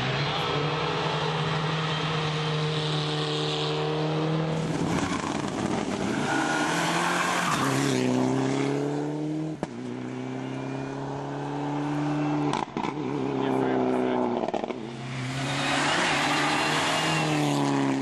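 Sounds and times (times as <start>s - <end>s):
rally car engine revving high: 0.0s - 18.0s.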